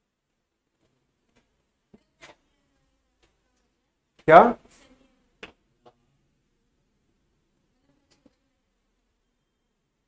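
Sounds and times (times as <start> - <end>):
man speaking a word: 4.3 - 4.6.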